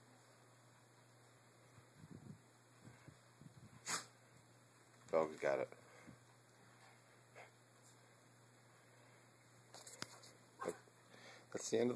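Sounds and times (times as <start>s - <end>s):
small dog barking: 10.6s - 10.9s.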